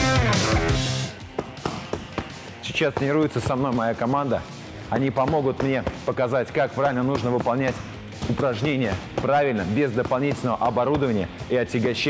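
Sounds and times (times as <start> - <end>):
punches slapping focus mitts: 1.2 - 12.0.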